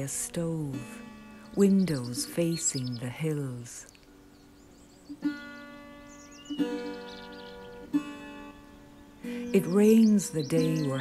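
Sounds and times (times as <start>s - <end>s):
plucked string instrument notes: 0.0s - 2.5s, 5.0s - 11.0s
faint birdsong: 0.0s - 11.0s.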